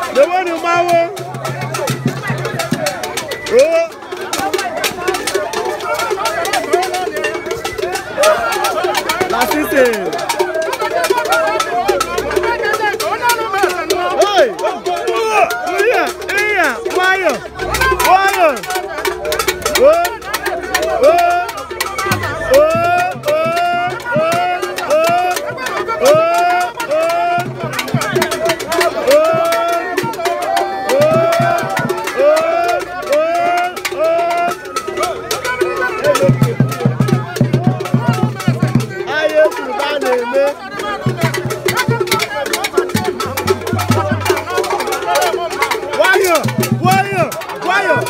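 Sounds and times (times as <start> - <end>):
percussion clicks and knocks: 0.0 - 48.0.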